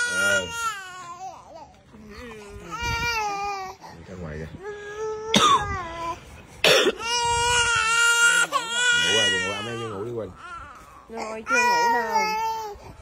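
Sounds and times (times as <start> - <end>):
baby crying hard: 0.0 - 1.4, 6.9 - 10.8.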